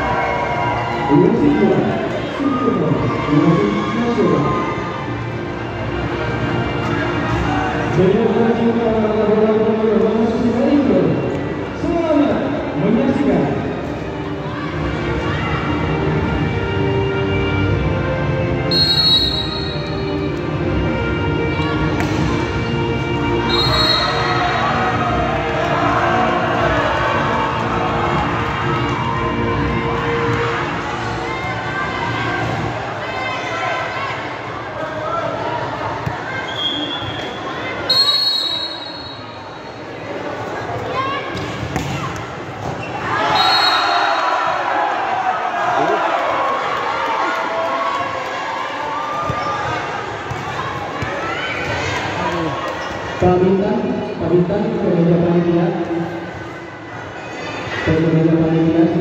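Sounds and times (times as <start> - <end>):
crowd chattering and shouting: 0.0 - 59.0
short high whistles: 18.7 - 20.0, 23.5 - 24.3, 36.5 - 39.8.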